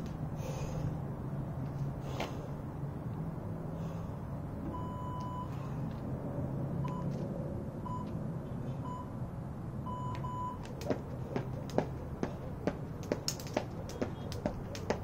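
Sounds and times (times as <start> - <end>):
electronic timer beeps: 9.9 - 10.6
steady low hum: 10.4 - 15.0
jump rope slapping asphalt: 10.6 - 15.0.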